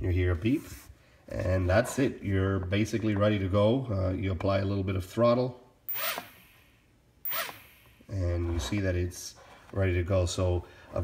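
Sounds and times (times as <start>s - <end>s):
drone propellers whirring: 7.3s - 8.0s.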